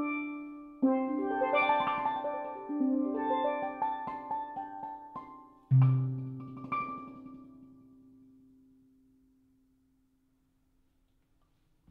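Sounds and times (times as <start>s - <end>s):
steelpan notes ringing: 0.0s - 7.8s.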